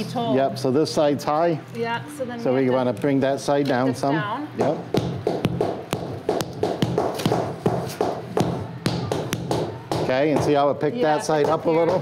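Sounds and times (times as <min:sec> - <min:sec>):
mallet tapping a flagstone: 0:04.6 - 0:10.6.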